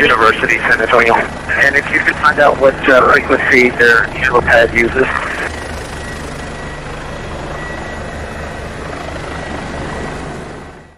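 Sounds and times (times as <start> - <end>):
helicopter rotor beat: 0.0 - 10.9
high engine whine: 0.0 - 10.9.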